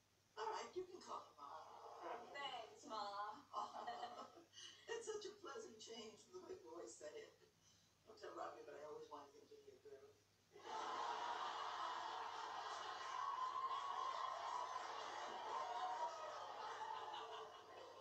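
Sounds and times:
studio audience laughing: 0:10.6 - 0:18.0.

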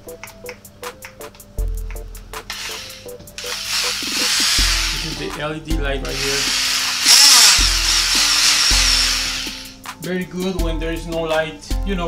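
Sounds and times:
background music with beat: 0:00.0 - 0:12.0
multi-tool motor buzzing: 0:02.5 - 0:05.3, 0:06.1 - 0:09.8.

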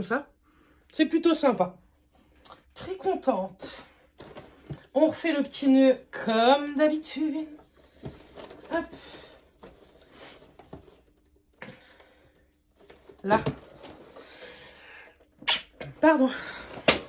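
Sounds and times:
ribbon and cardboard rustling: 0:06.2 - 0:14.6
woman sneezing: 0:15.4 - 0:15.9.

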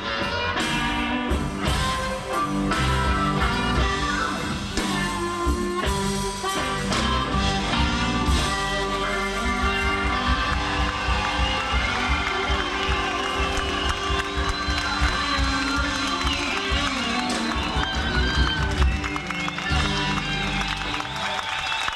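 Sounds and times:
live blues band playing: 0:00.0 - 0:21.9
drum beat: 0:07.8 - 0:21.0.

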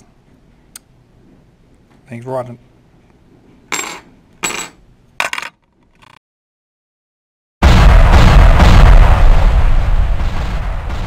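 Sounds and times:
metal coins clinking on pile: 0:03.7 - 0:05.6.

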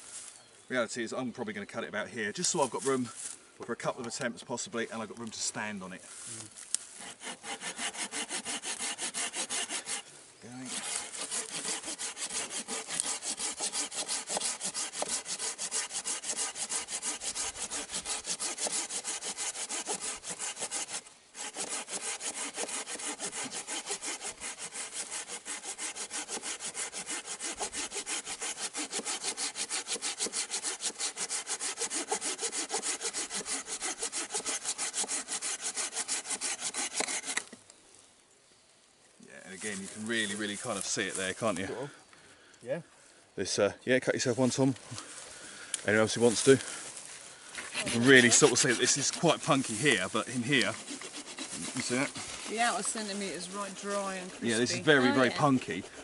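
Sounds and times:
hand saw cutting a log: 0:07.0 - 0:37.6, 0:47.6 - 0:56.0.

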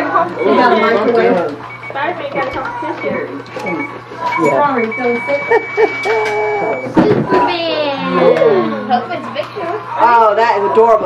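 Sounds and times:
people talking: 0:00.0 - 0:11.0
high electronic beep: 0:00.4 - 0:07.1.

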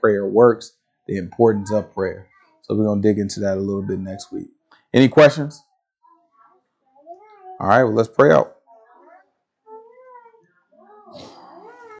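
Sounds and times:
faint high-pitched voice: 0:01.1 - 0:04.5, 0:06.0 - 0:12.0.

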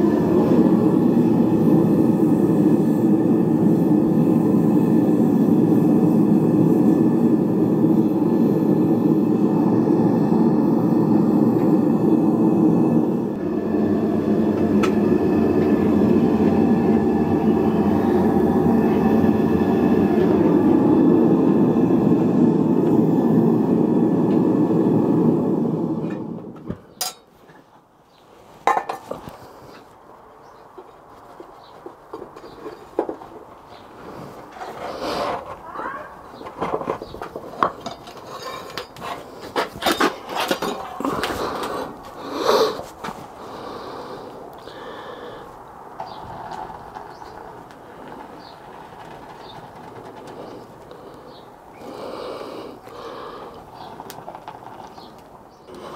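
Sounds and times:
furnace burner roaring: 0:00.0 - 0:55.9.

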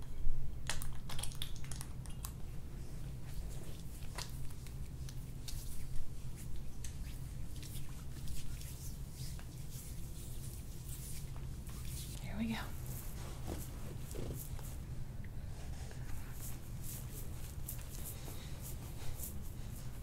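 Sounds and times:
hands sliding on oiled skin: 0:02.9 - 0:14.8, 0:15.6 - 0:20.0.

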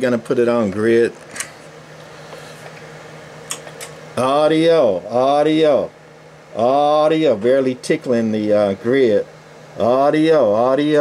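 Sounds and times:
amplifier hum and fan noise: 0:00.0 - 0:11.0.

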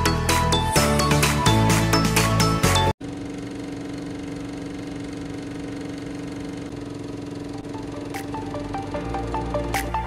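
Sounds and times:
film projector whirring and rattling: 0:03.0 - 0:10.0.

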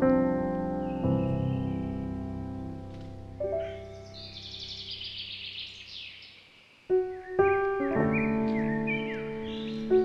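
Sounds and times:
solo piano: 0:00.0 - 0:05.4, 0:06.9 - 0:10.0
songbird chirping: 0:00.0 - 0:10.0.

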